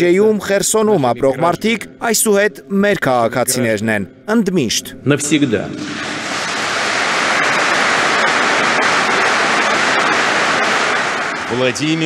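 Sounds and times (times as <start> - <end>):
audience applauding: 5.8 - 12.0.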